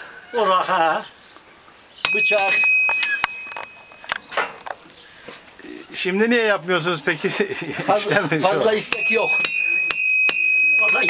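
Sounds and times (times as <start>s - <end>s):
hammer ringing on anvil: 2.0s - 4.0s, 8.9s - 11.0s
sharp metallic taps: 2.0s - 4.8s, 8.9s - 11.0s.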